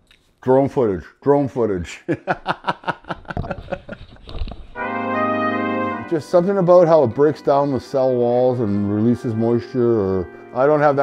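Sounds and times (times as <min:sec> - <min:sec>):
man chuckling: 0:02.0 - 0:04.4
held brass chord: 0:04.8 - 0:11.0.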